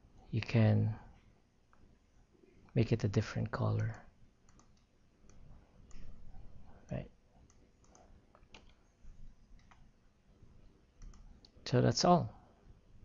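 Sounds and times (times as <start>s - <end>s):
faint computer mouse clicks: 3.8s - 6.2s, 6.9s - 8.8s, 9.5s - 9.9s, 11.0s - 11.6s.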